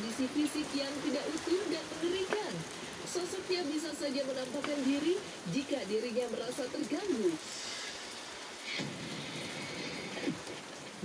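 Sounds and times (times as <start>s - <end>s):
steady rushing noise: 7.4s - 11.0s.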